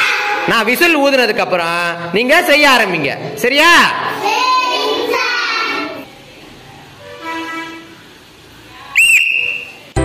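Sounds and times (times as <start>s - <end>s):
sports whistle blast: 9.0s - 9.8s.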